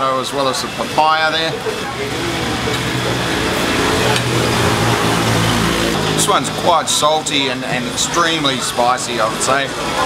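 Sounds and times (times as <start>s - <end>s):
machine hum with hiss: 1.5s - 8.0s.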